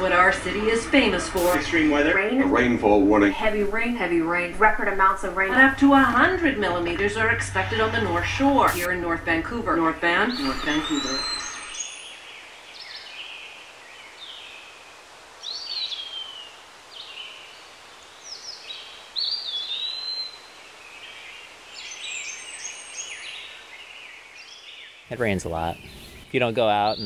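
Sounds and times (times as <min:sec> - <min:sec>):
faint steady hiss: 0:00.0 - 0:07.3, 0:11.8 - 0:27.0
songbirds whistling and chirping: 0:10.2 - 0:13.4, 0:18.3 - 0:21.2, 0:21.8 - 0:27.0.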